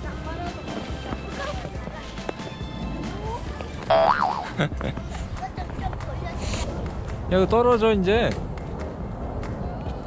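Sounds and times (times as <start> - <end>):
cartoon boing spring twang: 3.9 - 4.4.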